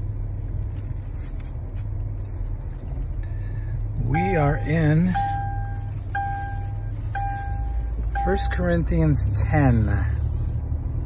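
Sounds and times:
car warning chime: 4.0s - 9.1s.

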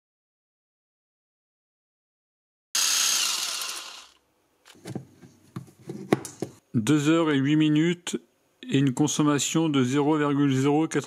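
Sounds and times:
impact driver motor whine: 2.8s - 4.2s.

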